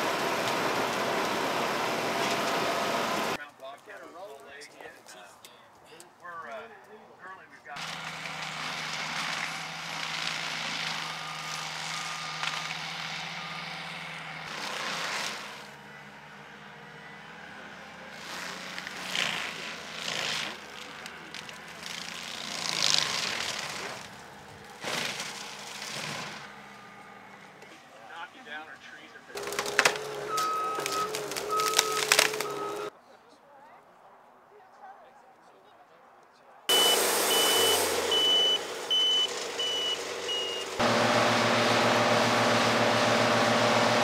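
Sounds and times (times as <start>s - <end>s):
loader engine and drum hum: 0.0s - 3.4s, 7.8s - 28.1s, 29.2s - 32.9s, 36.7s - 44.0s
mulcher grinding wood: 0.0s - 3.4s, 7.8s - 28.1s, 29.3s - 32.9s, 36.7s - 44.0s
sharp cracks: 29.4s - 32.9s
higher machine tone: 30.2s - 32.9s, 36.7s - 44.0s.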